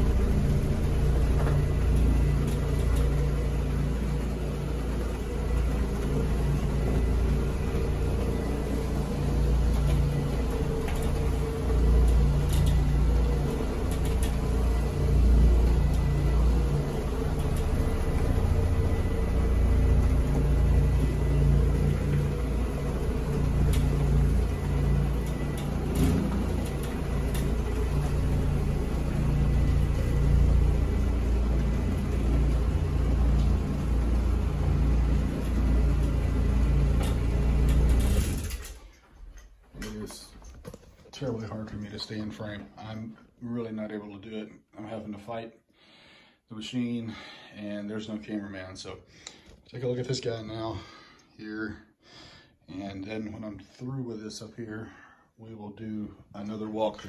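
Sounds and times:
carpet floor machine humming: 0.0 - 43.8.

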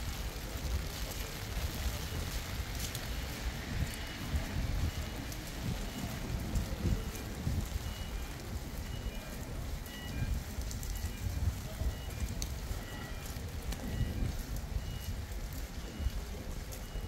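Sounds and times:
rain hissing on wet paving: 0.0 - 17.0.

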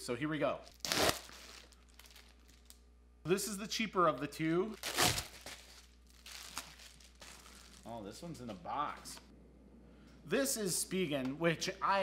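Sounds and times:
plastic mailer ripping open: 0.7 - 2.6, 4.8 - 7.3
plastic crinkling: 0.7 - 2.8, 4.8 - 8.0.

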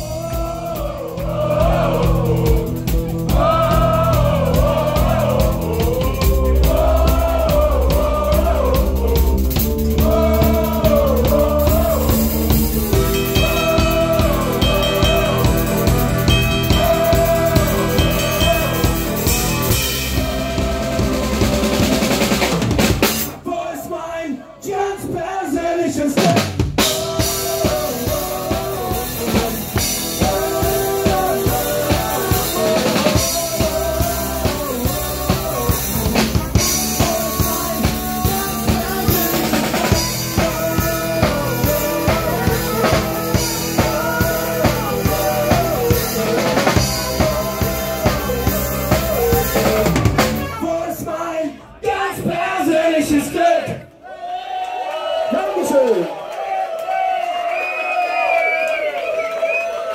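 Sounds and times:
drum kit beat: 0.0 - 23.4, 26.2 - 51.1
live band playing upbeat song: 0.0 - 23.4, 26.2 - 51.1.

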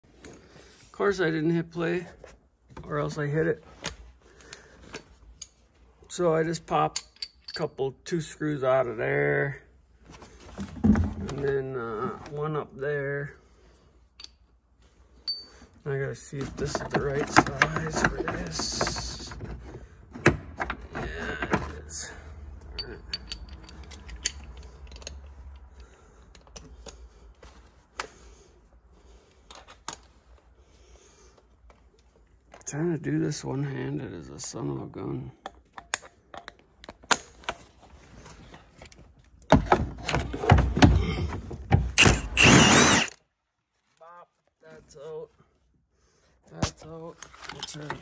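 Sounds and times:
light metallic rattles: 22.5 - 26.9.

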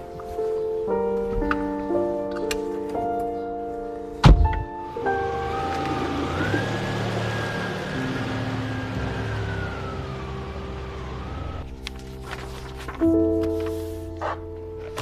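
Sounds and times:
soft background music: 0.0 - 15.0
car door shutting: 4.2 - 7.4
car engine pulling away: 4.8 - 12.4.

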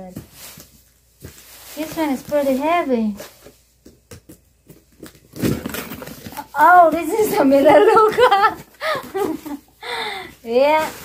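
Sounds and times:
cardboard and paper rustling: 0.0 - 11.0.

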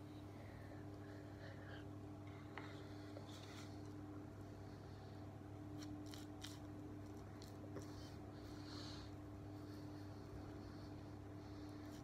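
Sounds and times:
steady hum: 0.0 - 12.0.

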